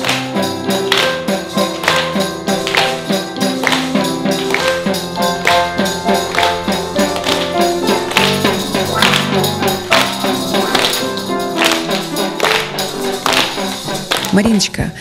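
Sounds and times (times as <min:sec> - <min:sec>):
upright piano waltz: 0:00.0 - 0:14.4
audience clapping: 0:00.0 - 0:14.6
percussion instruments tapping: 0:00.0 - 0:14.8.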